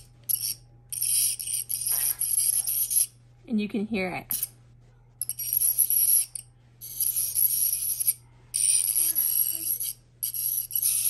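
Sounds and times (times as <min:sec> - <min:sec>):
ultrasonic scaler scraping buzz: 0:00.0 - 0:03.2, 0:05.2 - 0:11.0.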